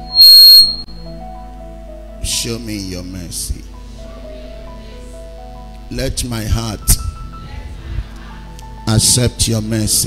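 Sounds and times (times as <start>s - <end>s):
shrill high-pitched squeal: 0.0s - 1.0s
soft background music: 0.0s - 10.0s.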